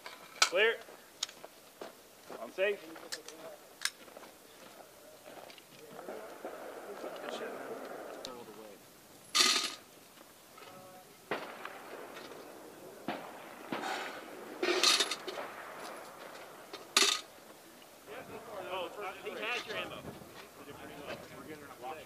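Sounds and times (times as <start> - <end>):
faint voices: 1.9 - 22.0
rifle shots: 11.3 - 17.5.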